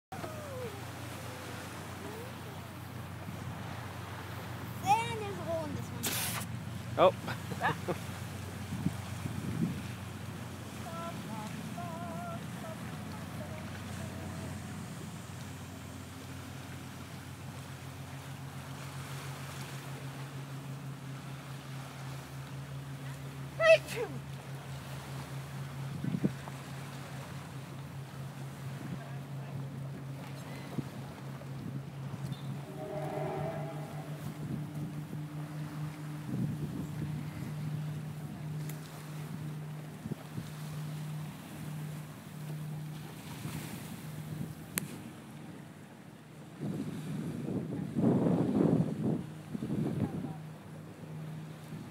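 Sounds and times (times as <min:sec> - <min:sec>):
steady low hum: 0:00.1 - 0:47.1
wind on microphone: 0:08.5 - 0:15.6, 0:25.9 - 0:26.5, 0:30.5 - 0:40.8, 0:46.4 - 0:50.5
low hum cutting out: 0:29.4 - 0:46.0.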